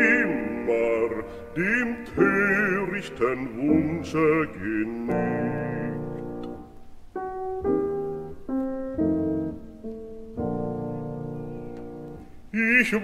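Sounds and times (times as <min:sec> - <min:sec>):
man singing: 0:00.0 - 0:06.4, 0:12.5 - 0:13.0
piano chords: 0:00.0 - 0:13.0.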